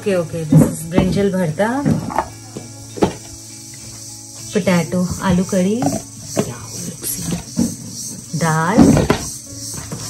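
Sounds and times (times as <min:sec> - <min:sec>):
soft steady music: 0:00.0 - 0:10.0.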